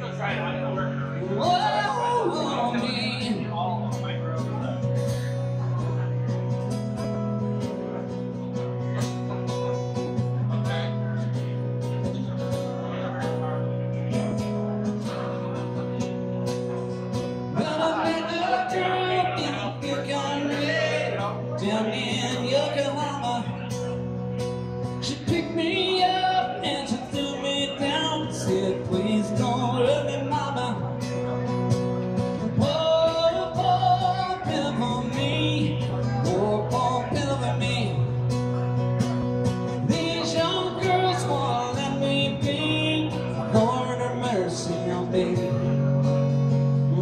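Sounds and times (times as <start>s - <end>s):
man singing: 0.0s - 5.8s, 17.4s - 47.0s
acoustic guitar strumming: 0.0s - 47.0s.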